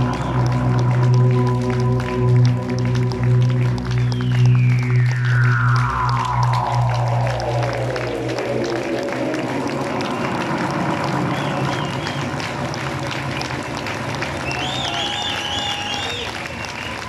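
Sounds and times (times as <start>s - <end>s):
low bass drone: 0.0s - 14.6s
audience applause: 0.0s - 17.0s
electronic tone gliding down: 4.3s - 12.0s.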